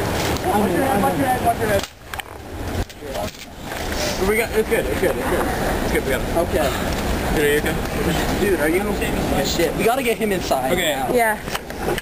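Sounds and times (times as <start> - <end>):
strained wordless voices: 0.3 - 11.5.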